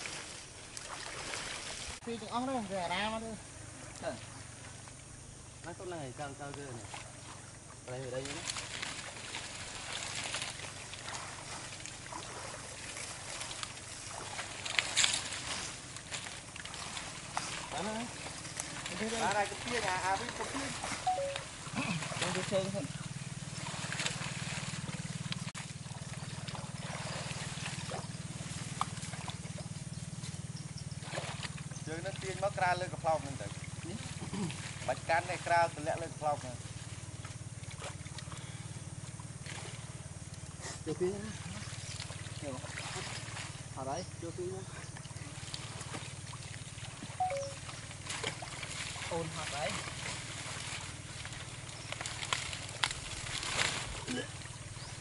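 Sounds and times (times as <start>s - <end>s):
low pulsing hum: 0.0s - 55.0s
people wading through water: 0.0s - 55.0s
wet plant stems snapping: 51.9s - 53.8s.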